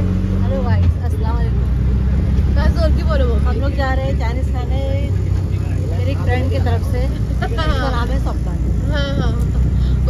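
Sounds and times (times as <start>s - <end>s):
auto-rickshaw engine droning: 0.0s - 10.0s
woman talking: 0.4s - 1.6s, 2.5s - 5.1s, 5.9s - 9.6s.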